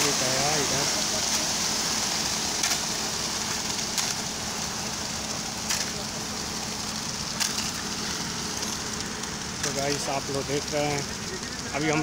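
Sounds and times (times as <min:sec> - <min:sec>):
truck humming: 0:00.0 - 0:12.0
wet concrete pouring down chute: 0:00.0 - 0:12.0.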